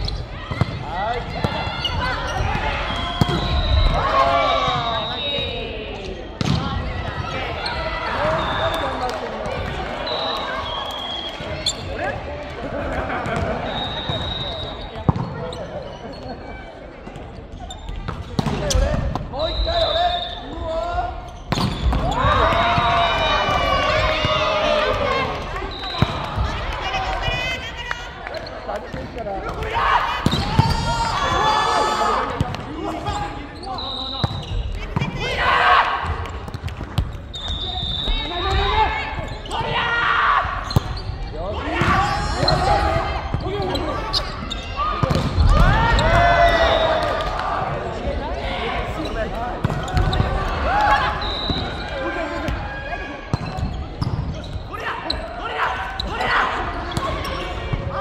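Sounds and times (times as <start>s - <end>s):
sneakers squeaking on floor: 0.0s - 5.6s, 10.1s - 12.1s, 13.2s - 16.5s, 17.2s - 20.6s, 21.2s - 22.8s, 32.4s - 35.1s, 36.6s - 39.8s, 40.5s - 41.4s, 42.0s - 48.1s, 48.8s - 52.6s, 53.3s - 58.0s
players shouting: 0.2s - 15.1s, 18.4s - 36.4s, 37.9s - 58.0s
volleyball hits echoing: 6.4s - 7.6s, 21.5s - 26.6s, 28.8s - 31.4s, 44.9s - 48.1s.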